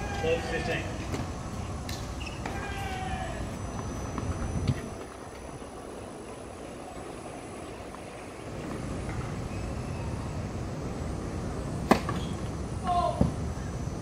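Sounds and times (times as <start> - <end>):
outdoor background noise: 0.0 - 14.0.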